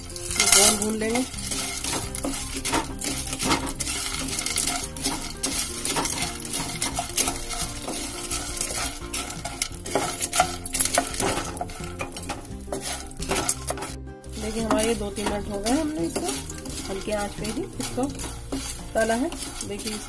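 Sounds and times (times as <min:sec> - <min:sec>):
light sizzle: 0:00.0 - 0:20.0
spatula scraping a pan: 0:00.0 - 0:20.0.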